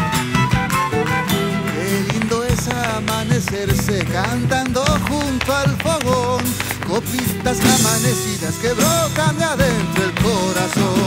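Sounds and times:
strummed guitar: 0.0 - 11.0
violin melody: 0.0 - 11.0
person singing: 0.9 - 11.0.

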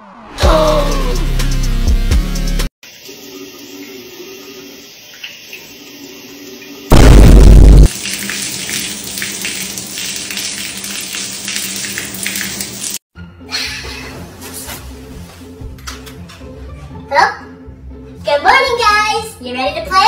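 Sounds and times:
tap water running into sink: 2.8 - 6.9, 7.9 - 13.0
deep boom sound effect: 6.9 - 7.9
water splashing onto tile floor: 7.8 - 13.0
faint background music: 13.2 - 20.0.

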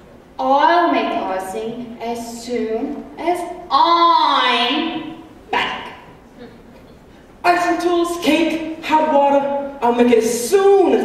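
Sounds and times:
actor calling out: 7.4 - 11.0.

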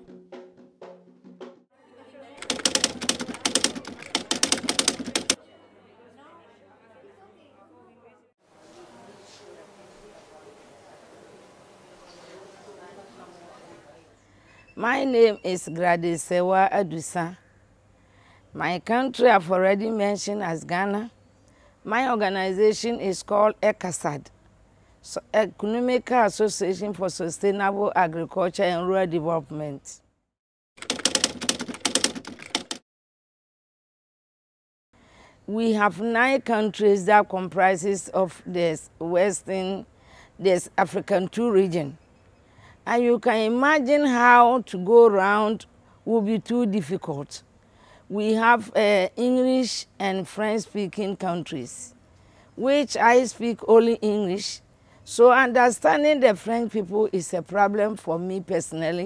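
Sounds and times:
rapid keyboard typing clicks: 2.4 - 5.4, 30.8 - 32.8.

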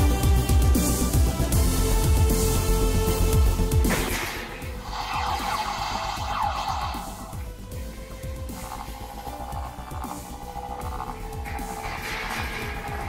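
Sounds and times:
quiet background music: 0.0 - 13.0
steady electronic tone: 4.7 - 12.2
toy electronic sound effects: 4.9 - 7.4, 8.4 - 11.8.

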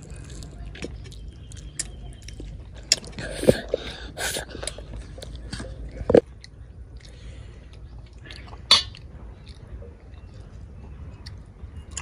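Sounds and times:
wet mouth clicks chewing: 0.1 - 7.2.

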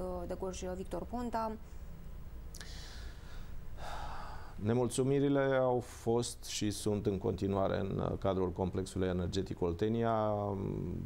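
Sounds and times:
low steady hum: 0.0 - 11.0
mouth click: 2.5 - 2.7
intake of breath: 2.6 - 4.6
man speaking: 4.6 - 11.0.

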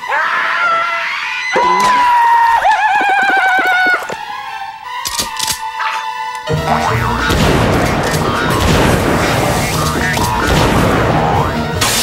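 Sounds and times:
person screaming: 0.0 - 4.0.

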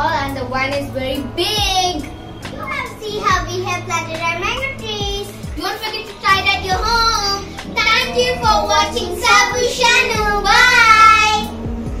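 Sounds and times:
child singing: 2.7 - 11.5.

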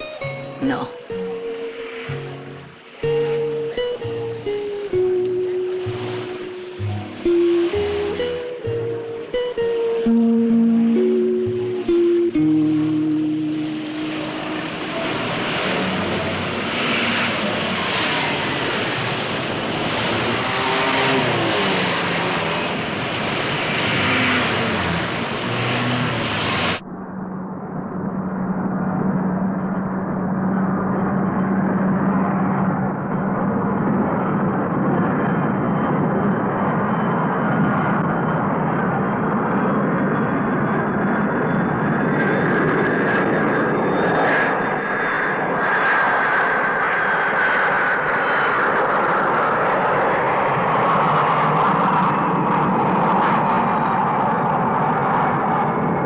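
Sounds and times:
aircraft engine drone: 0.0 - 56.0
aircraft engine rushing noise: 0.0 - 56.0.

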